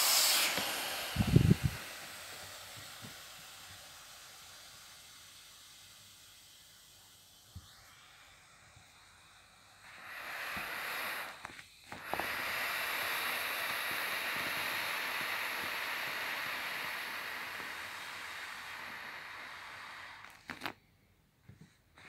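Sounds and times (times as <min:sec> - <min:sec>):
air hissing from mattress valve: 0:00.0 - 0:20.8.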